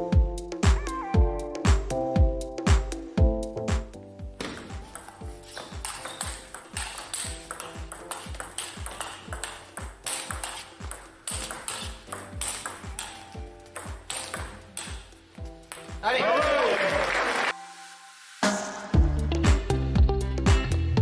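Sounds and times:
background music with steady beat: 0:00.0 - 0:21.0
table tennis ball pinging: 0:04.4 - 0:16.0.

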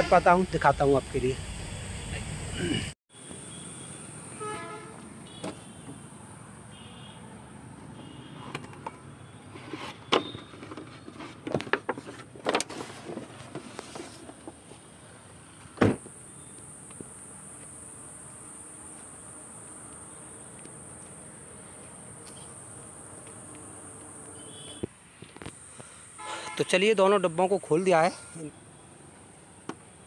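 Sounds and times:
insects droning: 0:00.0 - 0:09.5, 0:14.8 - 0:30.0
vehicle horn toot: 0:03.2 - 0:05.9, 0:06.7 - 0:07.3, 0:07.9 - 0:08.7, 0:24.4 - 0:24.9, 0:26.2 - 0:26.8
high insect buzz: 0:16.0 - 0:24.9.

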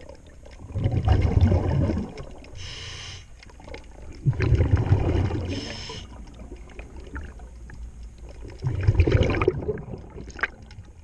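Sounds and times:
rush of exhaled bubbles: 0:00.6 - 0:02.4, 0:04.2 - 0:07.4, 0:08.6 - 0:10.7
regulator inhale hiss: 0:02.6 - 0:03.4, 0:05.5 - 0:06.2.

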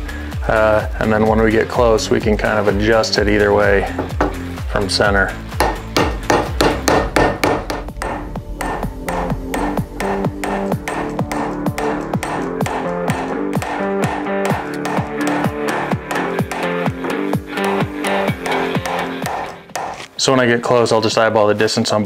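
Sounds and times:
electronic music with steady beat: 0:03.3 - 0:20.1.

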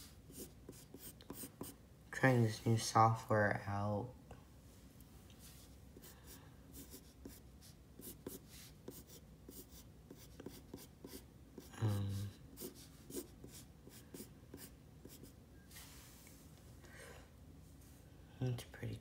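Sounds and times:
pencil scratching on paper: 0:00.0 - 0:01.8, 0:06.0 - 0:15.4
low vocal hum: 0:11.7 - 0:12.4.

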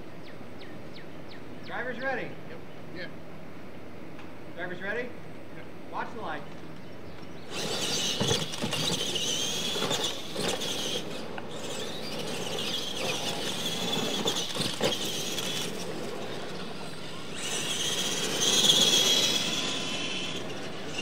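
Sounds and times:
toy truck motors whining: 0:07.4 - 0:21.0
toy trucks knocking on bumps: 0:07.5 - 0:16.4.

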